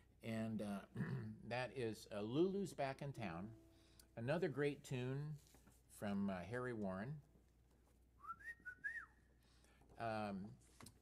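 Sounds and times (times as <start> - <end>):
man whistling gliding notes: 8.2 - 9.3.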